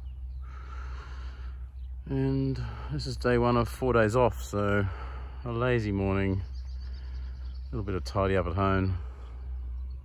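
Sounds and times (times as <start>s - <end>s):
steady low rumble: 0.0s - 10.0s
man breathing in: 0.4s - 1.8s.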